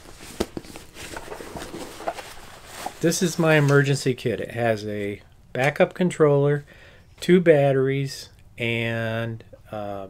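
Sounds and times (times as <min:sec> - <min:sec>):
fabric bag rustling: 0:00.0 - 0:03.9.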